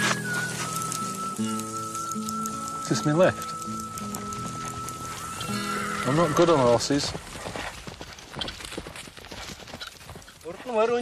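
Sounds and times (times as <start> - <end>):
horse hooves clip-clopping: 0.0 - 11.0
man's voice: 6.0 - 7.2.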